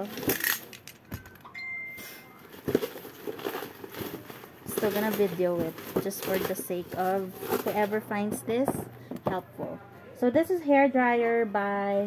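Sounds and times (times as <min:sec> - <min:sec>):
steady high tone: 0:01.4 - 0:02.5.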